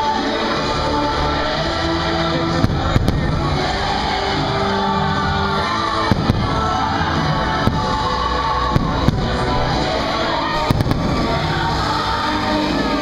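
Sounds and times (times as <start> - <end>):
loud soundtrack music: 0.0 - 13.0
fireworks bangs: 2.5 - 12.2.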